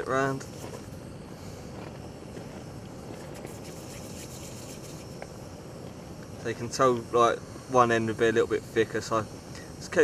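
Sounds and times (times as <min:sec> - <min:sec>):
outdoor hiss: 0:00.0 - 0:10.0.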